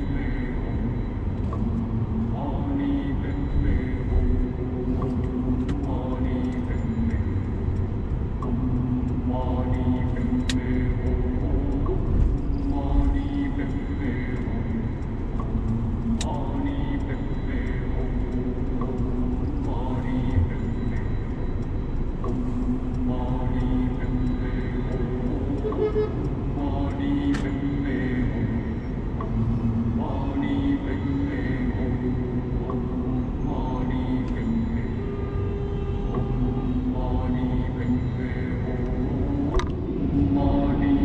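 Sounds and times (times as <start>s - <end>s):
road rumble inside car: 0.0s - 41.0s
voice singing long held notes: 0.0s - 41.0s.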